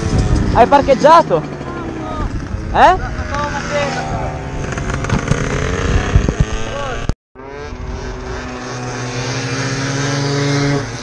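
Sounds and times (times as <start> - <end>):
wind noise on microphone: 0.0 - 0.9, 2.1 - 8.5
motorcycle engine running: 0.0 - 11.0.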